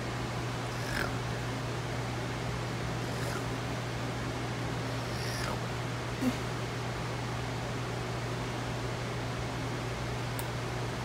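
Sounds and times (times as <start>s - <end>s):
steady low hum: 0.0s - 11.0s
high-pitched animal whimper: 0.8s - 1.2s, 3.0s - 3.5s, 4.9s - 5.6s.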